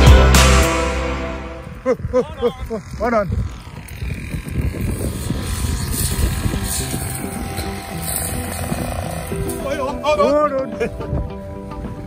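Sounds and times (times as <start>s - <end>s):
background music: 0.0s - 1.9s, 6.6s - 12.0s
brush cutter engine running: 1.7s - 11.0s.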